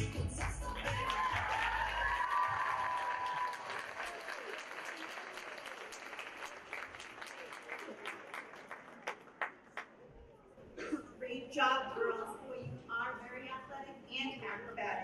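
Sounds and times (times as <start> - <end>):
dance music: 0.0 - 2.6
audience applauding and cheering: 0.0 - 9.9.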